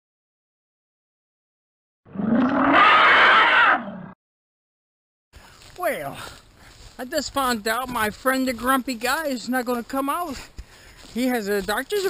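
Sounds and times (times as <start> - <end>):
roaring growl: 2.1 - 4.2.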